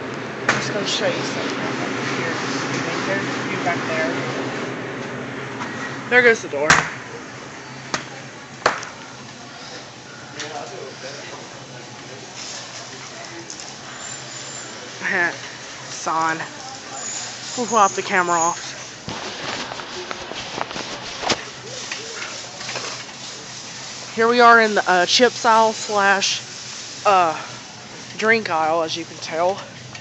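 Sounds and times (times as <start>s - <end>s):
faint distant voices: 7.0s - 24.2s
shop floor hiss: 9.4s - 29.7s.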